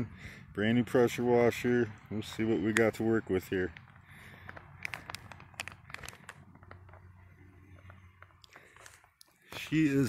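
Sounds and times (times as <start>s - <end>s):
foil pouch crinkling: 3.6s - 10.0s.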